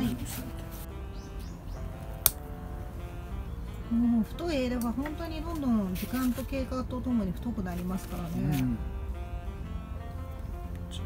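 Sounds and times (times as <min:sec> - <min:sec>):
soft guitar music: 0:00.0 - 0:11.0
pruning shears snipping: 0:02.0 - 0:02.5, 0:04.7 - 0:06.6.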